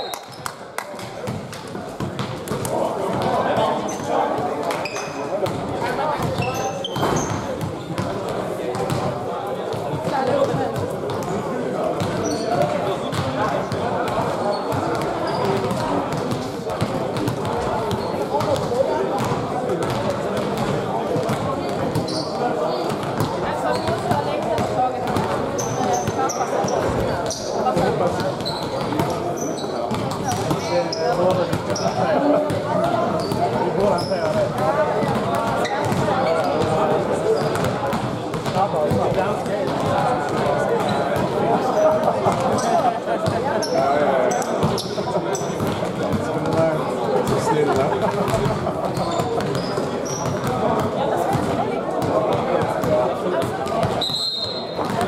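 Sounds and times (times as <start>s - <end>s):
sneaker squeaks: 0.0s - 0.6s, 3.8s - 4.1s, 4.7s - 5.3s, 6.2s - 8.0s, 12.0s - 13.3s, 14.5s - 15.8s, 21.9s - 24.1s, 25.5s - 27.6s, 28.3s - 32.0s, 33.1s - 34.4s, 37.3s - 37.8s, 43.5s - 45.8s, 48.3s - 50.6s, 53.7s - 55.0s
many voices talking: 0.0s - 55.0s
basketball bouncing on court floor: 6.2s - 9.1s, 10.0s - 11.3s, 12.0s - 13.4s, 14.1s - 22.2s, 22.9s - 29.2s, 29.9s - 31.9s, 34.2s - 36.8s, 37.4s - 41.4s, 47.3s - 54.1s, 54.8s - 55.0s.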